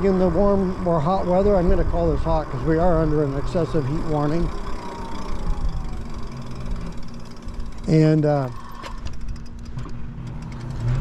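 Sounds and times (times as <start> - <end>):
wind rumble on microphone: 0.0 - 3.6
electric motor hum: 0.1 - 11.0.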